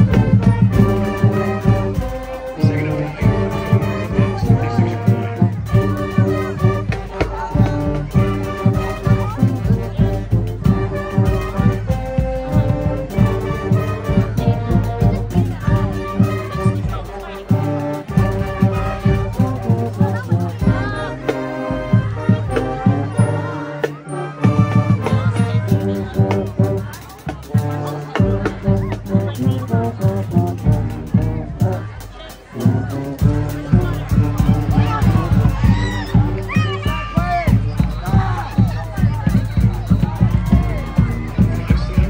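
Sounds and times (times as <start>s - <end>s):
marching band brass playing: 0.0s - 42.0s
steady drum beat: 0.0s - 42.0s.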